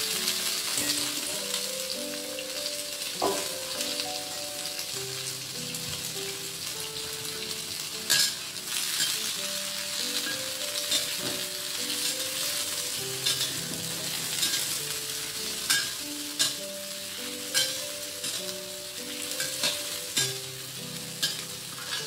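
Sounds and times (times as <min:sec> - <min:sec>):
shrimp sizzling in a wok: 0:00.0 - 0:22.0
metal spatula striking wok: 0:15.6 - 0:16.7, 0:21.2 - 0:22.0.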